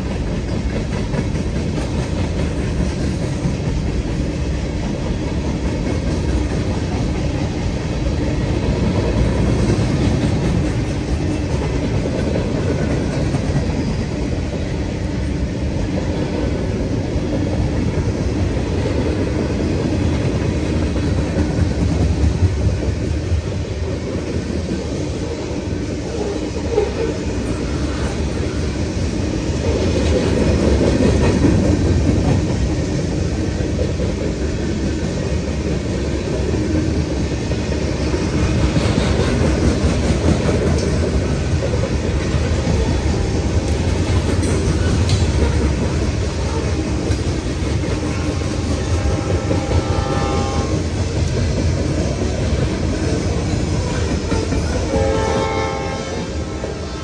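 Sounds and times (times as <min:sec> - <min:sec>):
clickety-clack rattling of rail cars: 0:00.0 - 0:57.0
freight train wheels rumbling on rails: 0:00.0 - 0:57.0.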